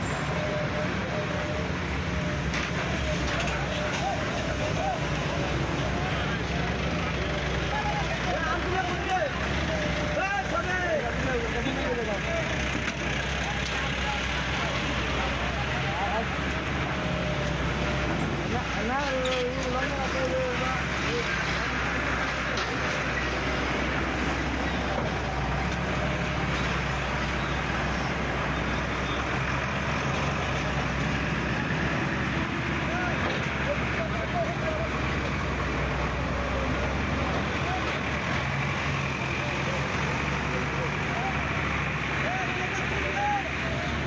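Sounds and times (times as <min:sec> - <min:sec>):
heavy vehicle engine running: 0:00.0 - 0:44.0
people talking: 0:00.3 - 0:28.1, 0:30.2 - 0:44.0.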